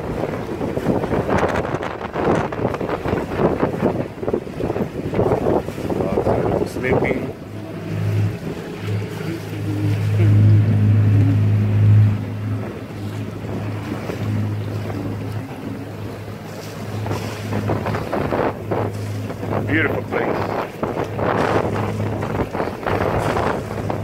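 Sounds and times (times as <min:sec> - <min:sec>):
water rushing along hull: 0:00.0 - 0:24.0
wind buffeting microphone: 0:00.0 - 0:24.0
steady low hum: 0:06.1 - 0:24.0.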